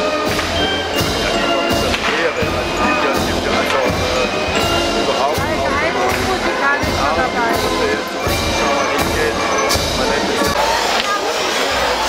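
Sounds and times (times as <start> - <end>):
band music playing: 0.0 - 12.0
crowd chatter: 0.0 - 12.0.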